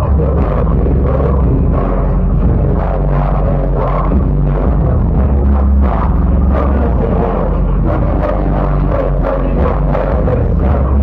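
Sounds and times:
live hip-hop music with heavy bass: 0.0s - 11.0s.

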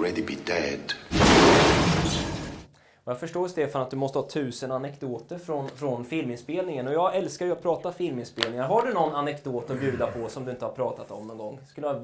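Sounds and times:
loud crash-like burst: 1.1s - 2.7s.

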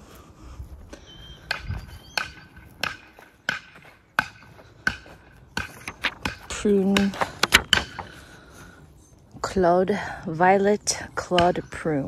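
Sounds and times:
footsteps on dry grass: 0.0s - 9.4s.

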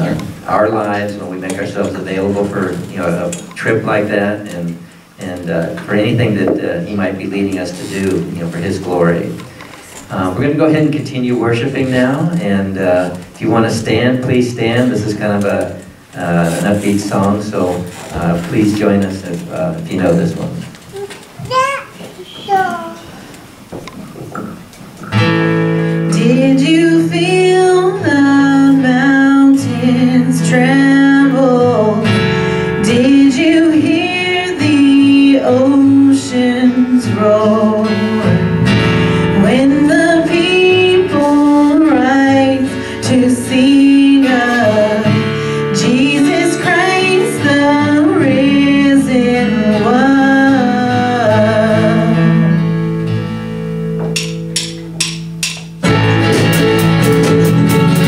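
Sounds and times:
acoustic guitar and ukulele: 24.5s - 58.0s
people singing: 39.4s - 52.3s.

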